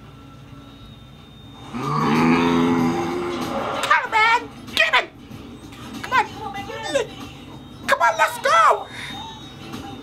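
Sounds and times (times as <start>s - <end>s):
person humming a long low note: 1.7s - 3.4s.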